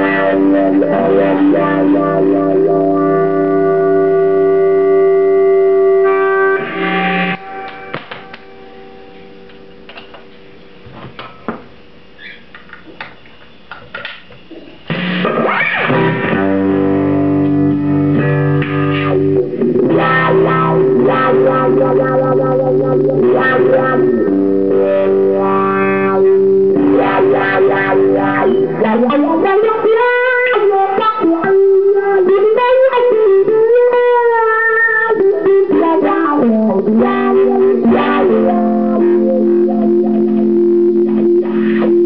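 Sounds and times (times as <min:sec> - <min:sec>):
electric guitar chords: 0:00.0 - 0:11.4, 0:14.4 - 0:42.0.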